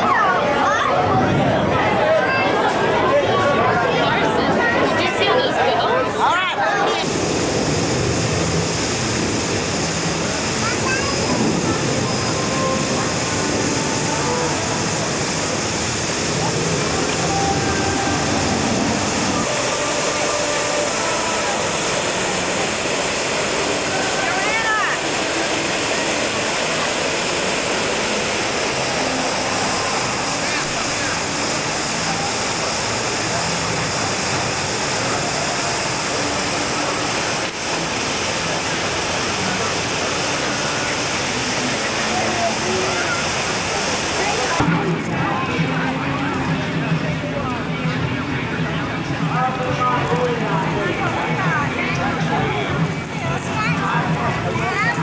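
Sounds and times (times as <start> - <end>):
fountain water splashing: 7.0 - 44.6.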